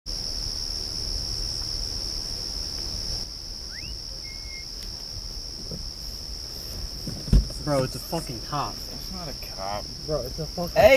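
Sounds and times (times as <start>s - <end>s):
crickets trilling: 0.1s - 10.9s.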